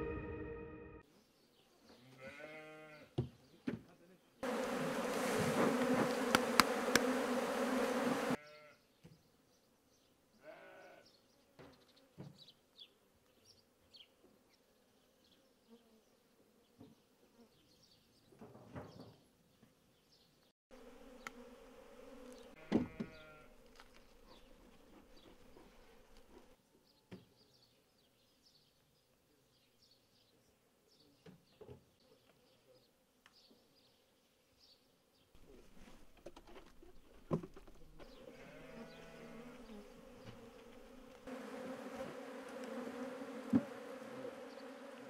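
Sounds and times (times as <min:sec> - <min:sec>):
farm animals bleating: 0:02.0 - 0:03.2, 0:08.4 - 0:08.9, 0:10.4 - 0:11.2, 0:22.5 - 0:23.6, 0:38.2 - 0:39.9
honeybees buzzing: 0:04.4 - 0:08.4, 0:20.7 - 0:26.6, 0:37.8 - 0:45.0.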